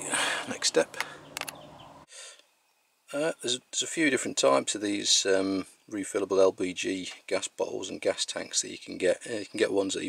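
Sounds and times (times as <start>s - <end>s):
faint outdoor background noise: 0.0s - 10.0s
short clicks: 1.0s - 1.6s.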